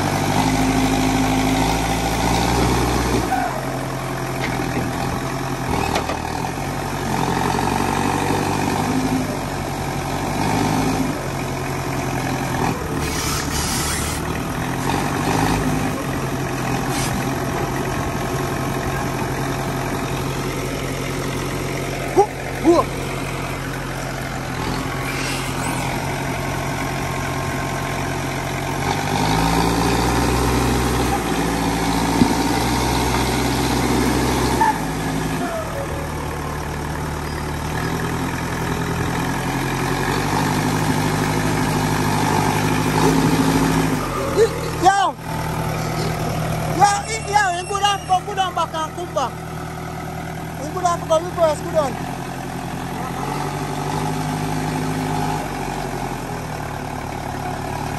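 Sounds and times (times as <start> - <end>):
diesel engine running: 0.0 - 57.9.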